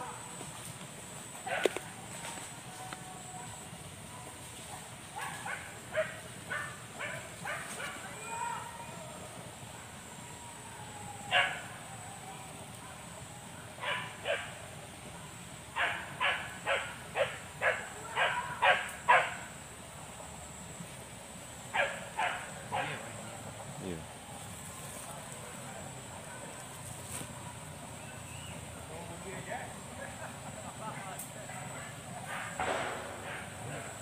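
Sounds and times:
dogs barking: 0:01.4 - 0:01.9, 0:05.1 - 0:08.1, 0:11.3 - 0:11.7, 0:13.7 - 0:14.6, 0:15.7 - 0:19.6, 0:21.7 - 0:23.2, 0:31.4 - 0:34.0.

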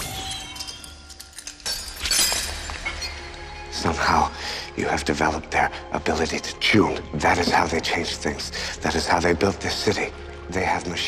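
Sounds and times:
glass shattering: 0:00.0 - 0:03.8.

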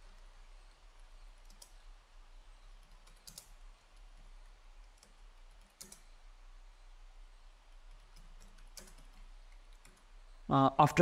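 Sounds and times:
low steady hum: 0:00.0 - 0:11.0
computer keyboard clicks: 0:01.3 - 0:01.8, 0:02.8 - 0:06.1, 0:07.8 - 0:10.1.

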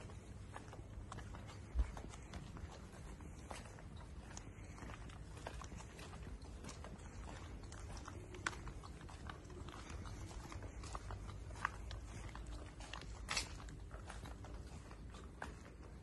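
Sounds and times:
footsteps on cobblestones: 0:00.0 - 0:16.0.

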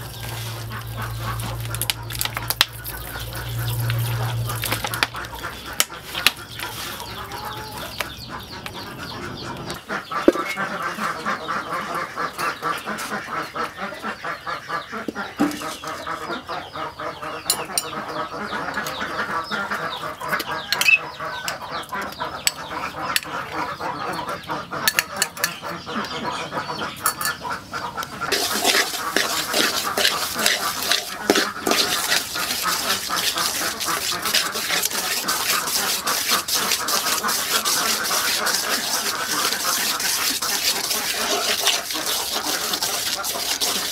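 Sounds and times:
metal spoon stirring in wok: 0:00.0 - 0:07.0, 0:28.3 - 0:43.9
meat squelching being kneaded: 0:00.0 - 0:08.1, 0:28.3 - 0:43.9
fowl clucking: 0:00.0 - 0:43.9
sugar sizzling in a wok: 0:28.3 - 0:37.1.

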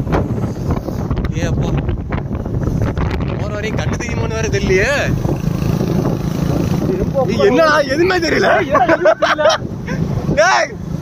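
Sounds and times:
motorcycle running: 0:00.0 - 0:10.2
wind on microphone: 0:00.0 - 0:11.0.

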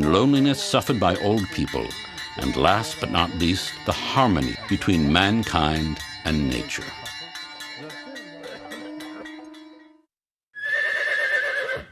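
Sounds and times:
plucked-string music: 0:00.0 - 0:10.1.

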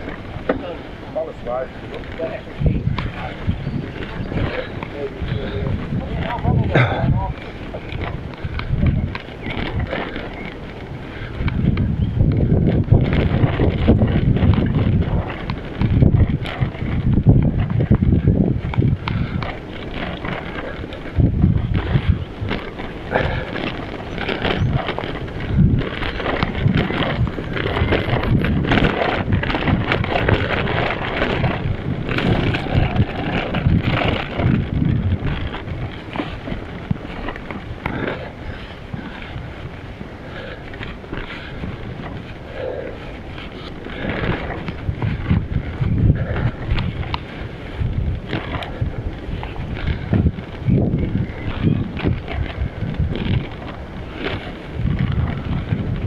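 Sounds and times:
bicycle tyres on gravel: 0:00.0 - 0:56.0
bumps and rattles: 0:00.0 - 0:56.0
wind buffeting microphone: 0:00.0 - 0:56.0.

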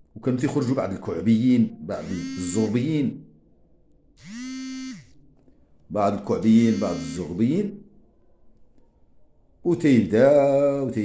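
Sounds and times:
man's drawn-out hesitation sound: 0:01.9 - 0:02.9, 0:06.3 - 0:07.6.

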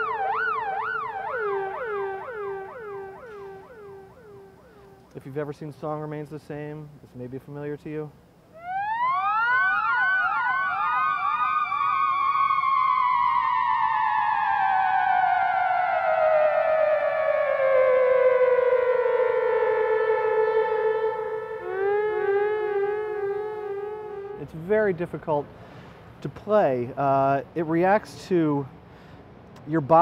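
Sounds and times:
theremin with delay echoes: 0:00.0 - 0:05.1, 0:08.6 - 0:25.0.

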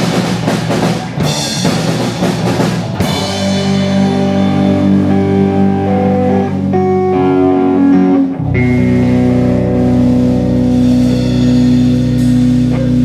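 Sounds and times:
rock band playing: 0:00.0 - 0:13.0.

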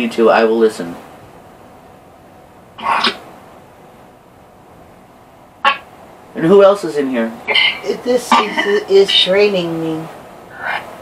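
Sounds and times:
person coughing: 0:07.5 - 0:08.7.

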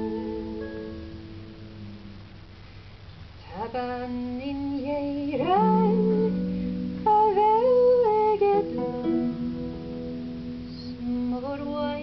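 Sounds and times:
woman singing folk song: 0:03.4 - 0:12.0.

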